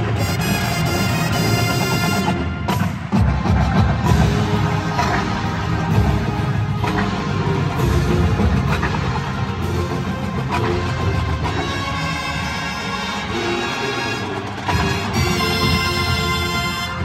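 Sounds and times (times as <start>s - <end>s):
marching band playing: 0.0s - 17.0s.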